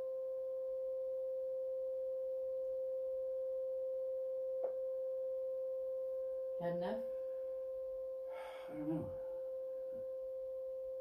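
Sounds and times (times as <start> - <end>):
steady electronic tone: 2.9 - 11.0.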